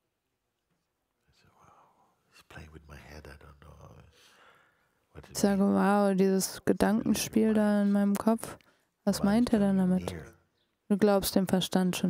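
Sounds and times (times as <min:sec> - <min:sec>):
man speaking faintly: 0:01.3 - 0:04.1, 0:10.0 - 0:10.4.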